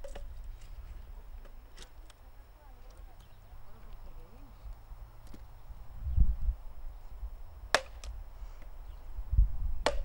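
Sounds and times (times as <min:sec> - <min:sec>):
faint voices: 0:00.8 - 0:04.8.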